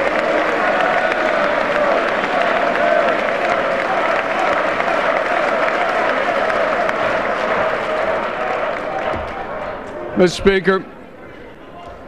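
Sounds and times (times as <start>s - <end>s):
crowd applauding: 0.0s - 10.7s.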